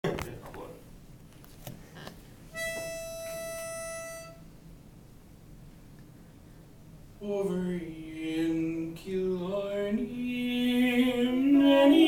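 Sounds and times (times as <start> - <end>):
pitch pipe note: 2.6 - 4.4.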